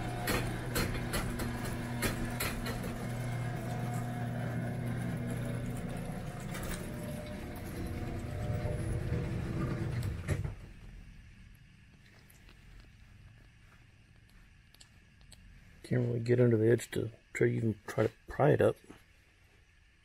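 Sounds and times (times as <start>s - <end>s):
sharp clicks and knocks: 0.0s - 3.2s.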